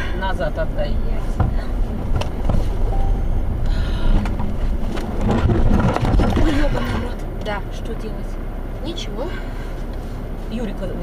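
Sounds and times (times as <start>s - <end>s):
car engine and tyres on snow: 0.0s - 11.0s.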